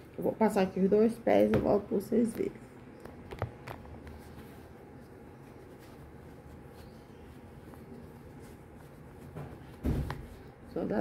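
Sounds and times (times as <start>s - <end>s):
low room hum: 0.0s - 11.0s
fabric rustling: 3.0s - 11.0s.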